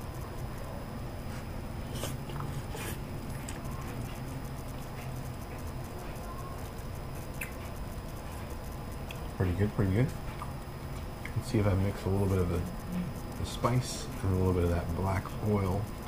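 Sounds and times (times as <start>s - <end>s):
sharp mouth sounds: 7.2s - 7.8s.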